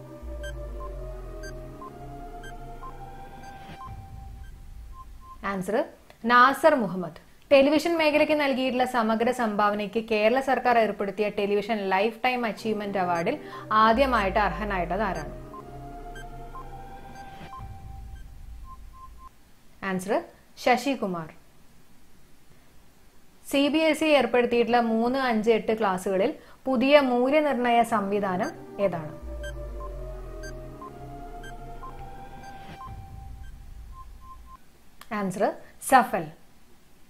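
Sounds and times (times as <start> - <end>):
deep bass drone: 0.0 - 5.5, 13.4 - 19.2, 28.4 - 34.6
rising synth swell: 0.0 - 5.5, 13.2 - 19.2, 28.3 - 34.6
synth music bed: 0.0 - 5.5, 12.5 - 19.3, 27.9 - 34.6
alternating timer beeps: 0.0 - 5.6, 12.6 - 19.3, 28.2 - 34.6
faint steady tone: 0.0 - 5.6, 12.5 - 19.4, 28.1 - 34.7.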